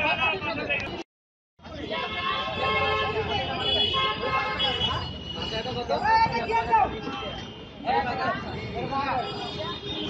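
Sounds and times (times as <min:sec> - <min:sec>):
road traffic: 0:00.0 - 0:10.0
people talking: 0:01.7 - 0:10.0
vehicle horn: 0:01.8 - 0:05.6.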